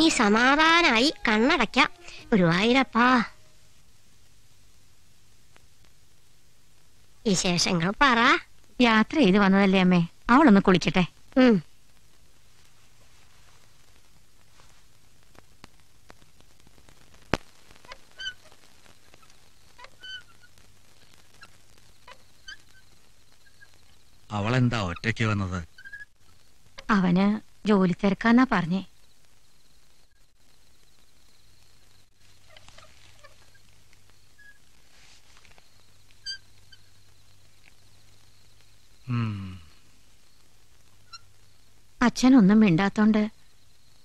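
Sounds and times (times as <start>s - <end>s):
low steady hum: 0.0s - 44.0s
short bird calls: 17.8s - 20.6s, 24.9s - 26.1s, 35.6s - 37.1s, 41.0s - 41.4s
bird chirping: 24.9s - 26.1s, 35.6s - 37.2s.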